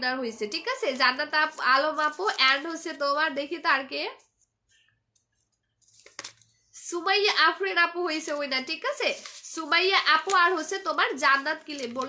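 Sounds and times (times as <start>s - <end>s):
woman's voice: 0.0s - 4.2s, 6.8s - 12.0s
paper slip crinkling and clicking: 5.1s - 6.6s, 8.1s - 12.0s.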